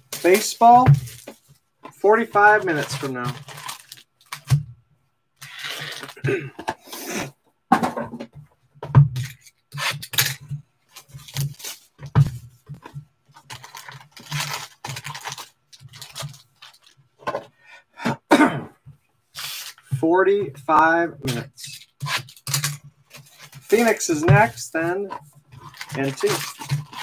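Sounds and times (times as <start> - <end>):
hands handling cardboard boxes: 0.0 - 4.5, 21.3 - 27.0
person clearing throat: 6.2 - 6.8, 18.0 - 18.8.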